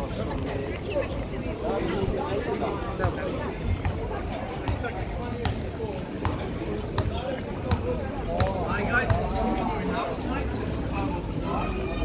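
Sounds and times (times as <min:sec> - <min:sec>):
chatter of passers-by: 0:00.0 - 0:12.0.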